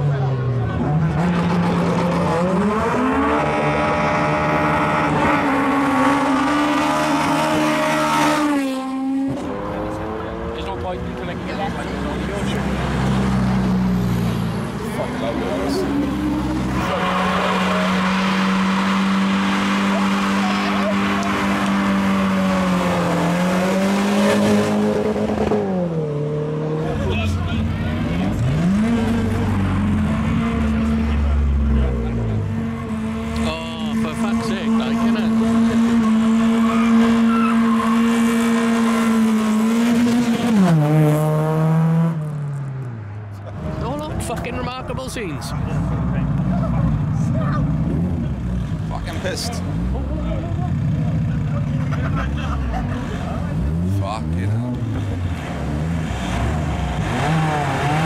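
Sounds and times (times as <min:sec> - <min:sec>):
crowd voices: 0:00.0 - 0:25.8, 0:26.6 - 0:40.6, 0:43.2 - 0:58.0
car engine at high revs: 0:00.0 - 0:58.0
tyre squeal: 0:36.5 - 0:39.1.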